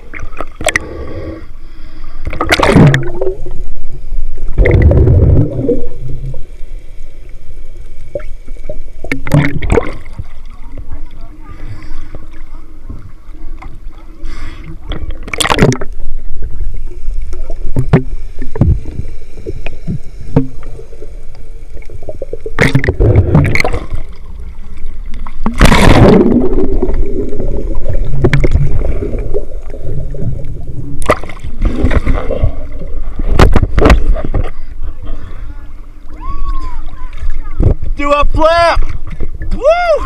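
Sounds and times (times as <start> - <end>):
low underwater rumble: 0.0 - 38.0
water sloshing and splashing: 2.2 - 3.7, 7.7 - 38.0, 38.8 - 39.6.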